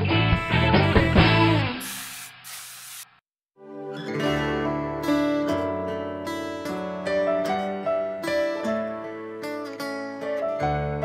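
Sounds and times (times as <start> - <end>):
guitar-led music: 0.0 - 1.8, 3.6 - 11.0.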